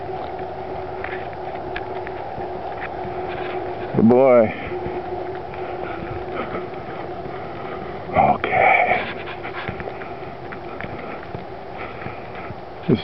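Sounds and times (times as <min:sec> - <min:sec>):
faint hum: 0:00.0 - 0:13.0
person panting: 0:04.5 - 0:12.6.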